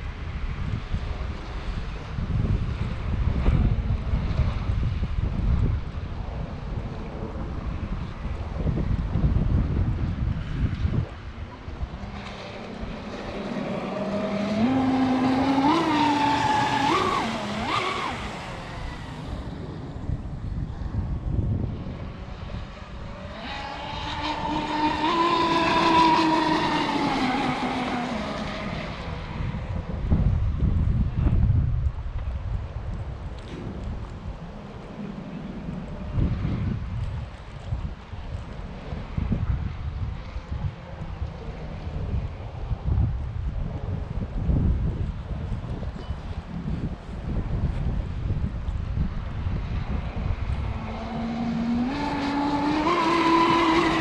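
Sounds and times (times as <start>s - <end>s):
wind on microphone: 0.0s - 54.0s
rc boat motor whine: 11.7s - 19.8s, 21.8s - 29.5s.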